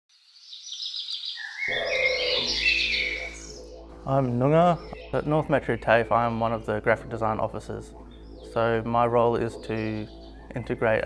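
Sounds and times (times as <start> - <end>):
bird calls: 0.4 - 11.0
low steady drone: 1.7 - 11.0.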